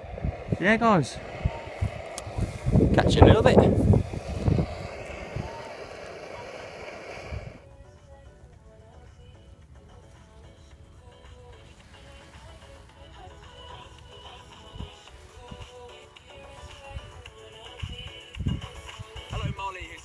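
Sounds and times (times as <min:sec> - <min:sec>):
wind buffeting microphone: 0:00.0 - 0:07.8, 0:12.4 - 0:15.9, 0:16.5 - 0:19.8
faint radio music: 0:00.0 - 0:20.0.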